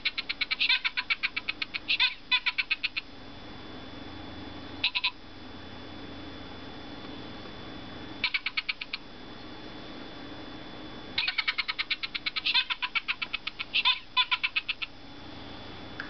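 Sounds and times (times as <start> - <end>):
toy giggling through small speaker: 0.0 - 3.0, 4.8 - 5.2, 8.2 - 9.0, 11.2 - 14.9.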